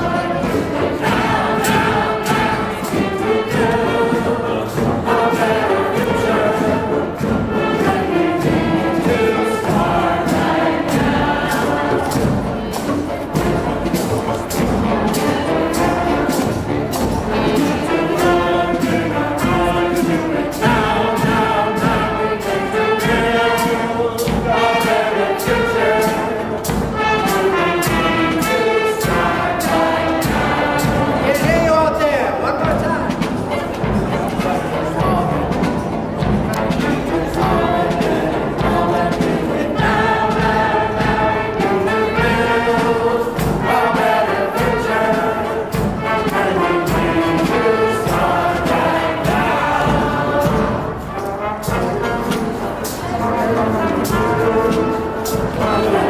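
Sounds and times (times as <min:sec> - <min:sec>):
group singing in chorus: 0:00.0 - 0:31.9, 0:33.1 - 0:56.0
marching band: 0:00.0 - 0:56.0
steady drum beat: 0:00.0 - 0:56.0.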